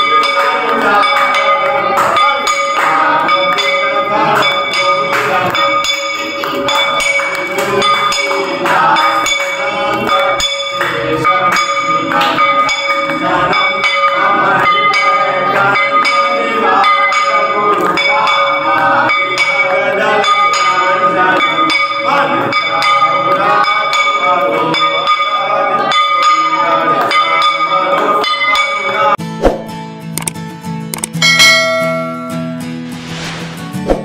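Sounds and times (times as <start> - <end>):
group of voices singing: 0.0 - 29.2
temple bell ringing: 0.0 - 29.2, 31.2 - 32.8.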